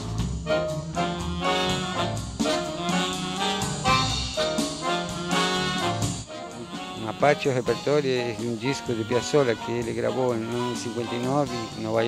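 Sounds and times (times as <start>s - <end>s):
jazz ensemble playing: 0.0s - 12.0s.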